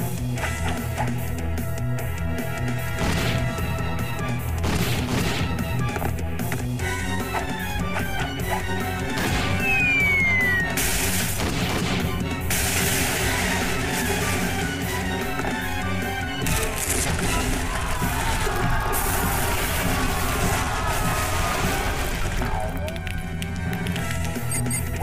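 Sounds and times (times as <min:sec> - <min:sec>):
cartoon action music: 0:00.0 - 0:25.0
falling whistle: 0:09.6 - 0:10.8
crashing noise: 0:10.7 - 0:14.8, 0:16.4 - 0:22.6.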